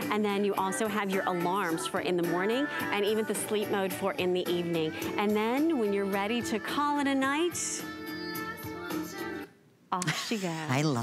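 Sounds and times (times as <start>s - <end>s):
music from a cd player: 0.6s - 9.5s.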